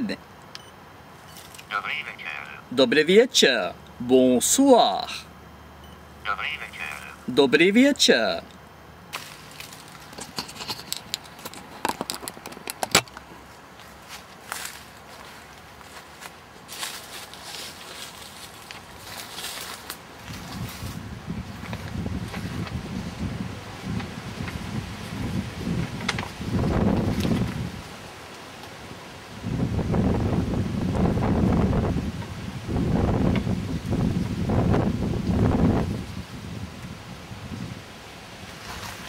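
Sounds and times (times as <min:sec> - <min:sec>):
wind buffeting microphone: 0:20.2 - 0:27.9, 0:29.4 - 0:37.9.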